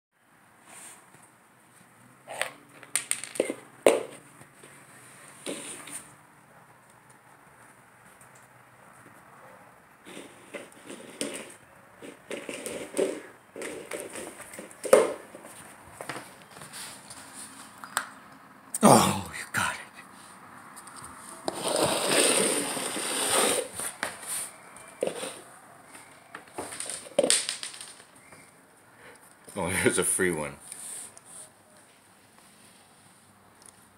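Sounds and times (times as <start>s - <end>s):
plastic cup scraping on wooden floor: 5.3s - 6.1s, 10.0s - 15.5s, 21.4s - 25.5s.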